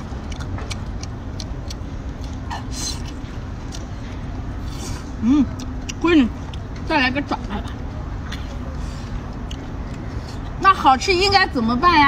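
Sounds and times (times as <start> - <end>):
person chewing: 0.0 - 6.9, 7.6 - 10.6
low background rumble: 0.0 - 12.0.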